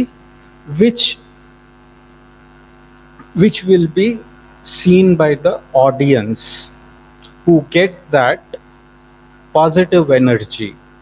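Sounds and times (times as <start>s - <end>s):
electrical mains hum: 0.0s - 11.0s
person speaking: 0.7s - 1.2s, 3.2s - 8.6s, 9.5s - 10.8s.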